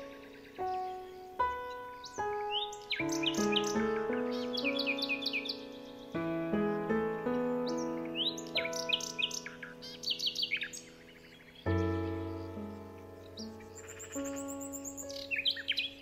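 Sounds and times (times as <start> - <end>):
calm instrumental music: 0.0 - 16.0
songbirds chirping: 0.0 - 16.0.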